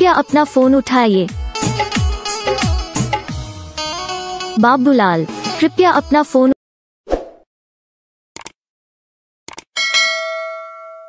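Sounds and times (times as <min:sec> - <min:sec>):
bell ding: 0:09.8 - 0:11.0.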